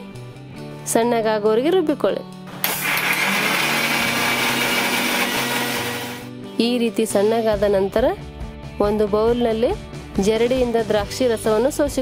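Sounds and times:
mixer grinder motor running: 2.6 - 6.3.

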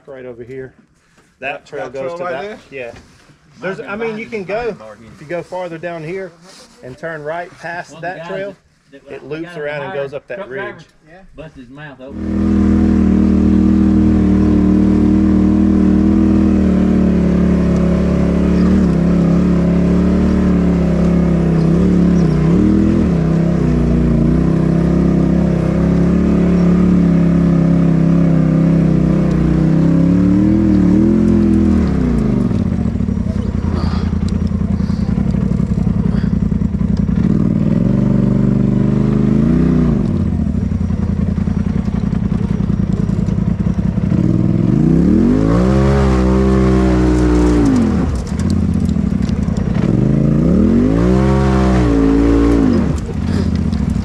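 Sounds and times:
off-road vehicle engine running: 12.0 - 54.0.

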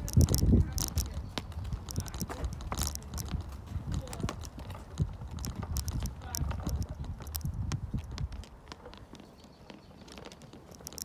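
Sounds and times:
wheelchair rolling rumble: 0.0 - 11.0
wheelchair wheels clicking: 0.0 - 11.0.

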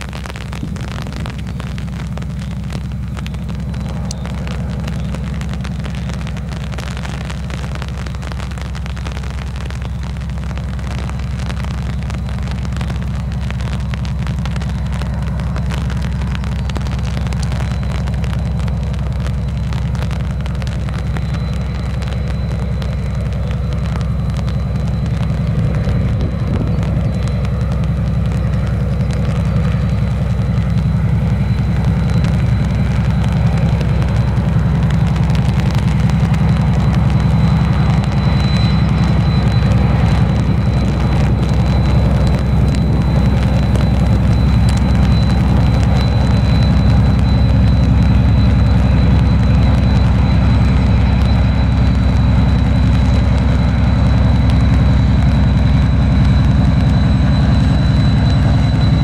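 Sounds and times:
diesel locomotive engine under load: 0.0 - 59.0.

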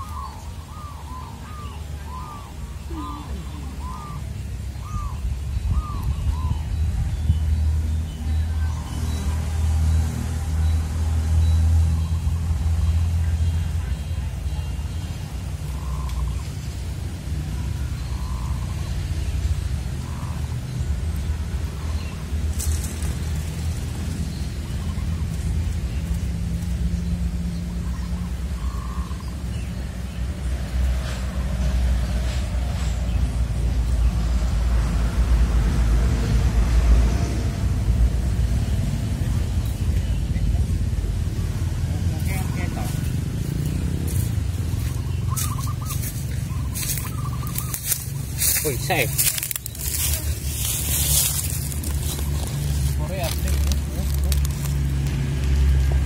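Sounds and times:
bird calling: 0.0 - 6.9, 11.4 - 23.0, 26.9 - 30.0, 39.3 - 55.0
steady low rumble: 31.6 - 56.0.

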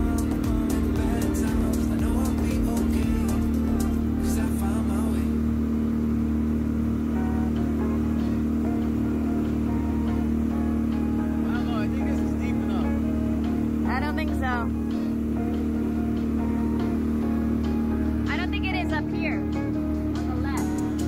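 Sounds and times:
outboard motor droning: 0.0 - 21.0.

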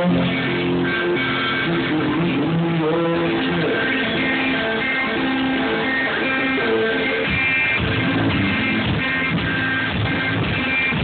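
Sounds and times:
blues-rock band playing: 0.0 - 11.0
electric guitars sustained notes: 0.0 - 11.0.

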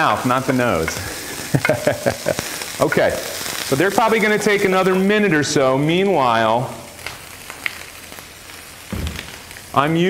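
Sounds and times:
onions sizzling in a pan: 0.0 - 10.0
faint crackles: 0.3 - 5.1, 6.2 - 10.0.

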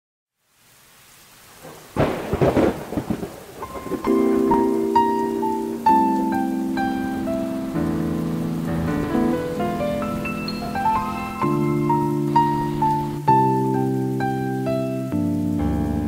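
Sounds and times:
rain: 0.3 - 16.0
thunderclap: 1.6 - 13.2
held keyboard chords: 3.6 - 16.0
higher single keyboard notes: 3.6 - 16.0.

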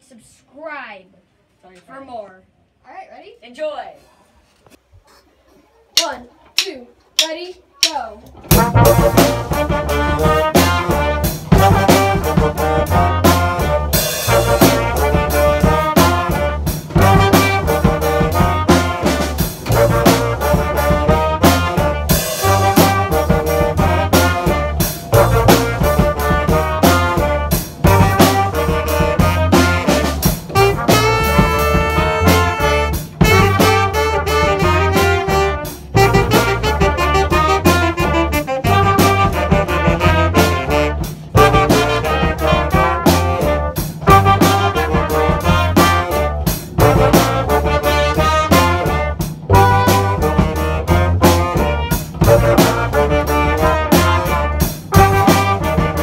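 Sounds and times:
percussion beat: 5.9 - 56.0
trumpets and saxophone melody: 8.4 - 56.0
electric bass line: 8.5 - 56.0.

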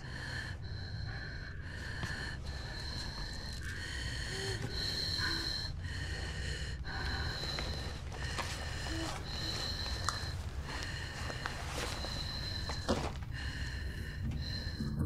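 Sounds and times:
person breathing hard with wheeze: 0.0 - 15.0.

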